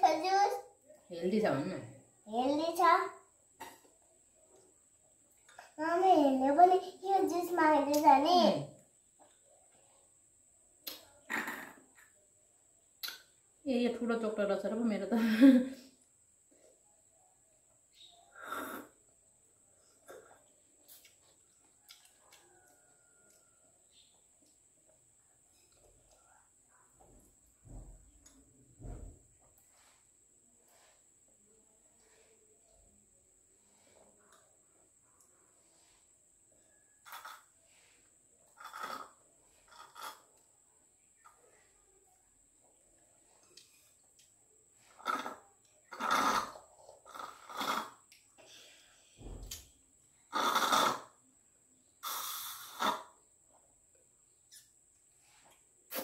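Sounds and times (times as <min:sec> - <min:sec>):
slurping through drinking straws: 0:18.4 - 0:19.0, 0:37.0 - 0:37.8, 0:38.5 - 0:40.4, 0:44.8 - 0:48.1, 0:50.3 - 0:51.2, 0:52.0 - 0:53.2
sipping through drinking straws: 0:50.3 - 0:51.1, 0:52.0 - 0:53.2.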